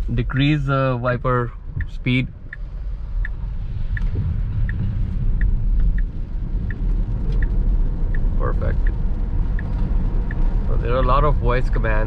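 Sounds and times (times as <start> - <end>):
tyre and road rumble in car cabin: 0.0 - 12.0
soft regular tick: 1.6 - 11.8.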